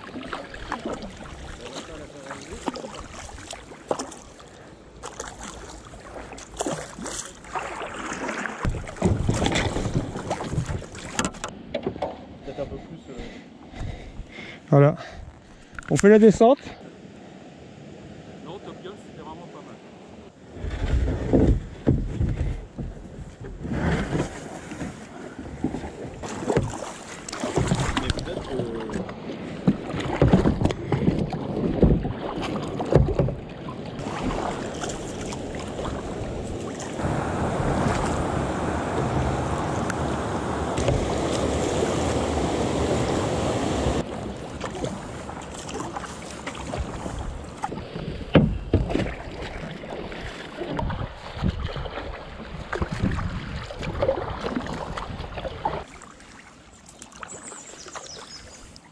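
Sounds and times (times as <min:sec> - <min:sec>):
water rushing: 0:00.0 - 0:11.5, 0:26.1 - 0:58.9
kayak paddle strokes splashing: 0:00.0 - 0:12.6, 0:20.5 - 0:58.9
water sloshing against hull: 0:00.0 - 0:16.1, 0:20.2 - 0:58.9.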